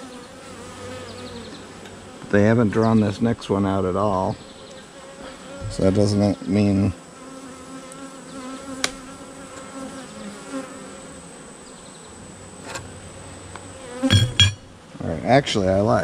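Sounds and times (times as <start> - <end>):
bees buzzing: 0.0 - 15.1.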